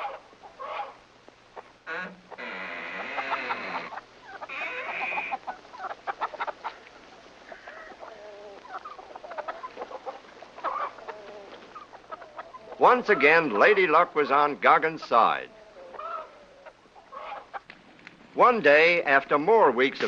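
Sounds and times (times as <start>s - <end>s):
chicken squawks: 0.0s - 1.0s, 1.6s - 13.8s, 15.3s - 17.7s
chickens clucking: 0.0s - 18.6s.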